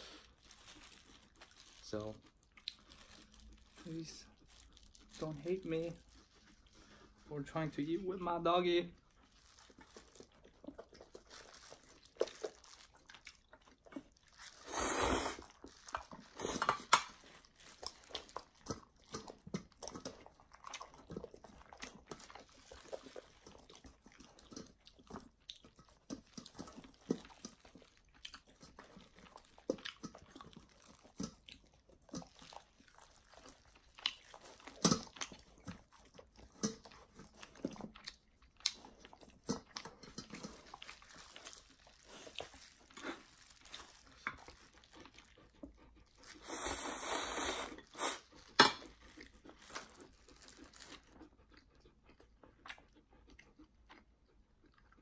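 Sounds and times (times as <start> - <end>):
wet chewing and smacking: 0.0 - 55.0.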